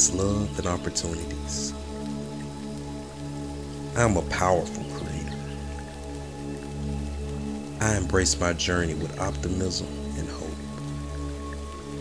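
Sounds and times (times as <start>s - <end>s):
falling rain: 0.0s - 12.0s
soft ambient music: 0.0s - 12.0s.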